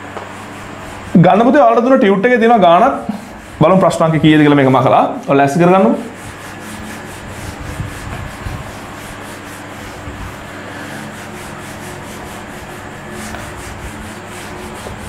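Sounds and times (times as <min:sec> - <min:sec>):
eraser rubbing on whiteboard: 0:00.1 - 0:15.0.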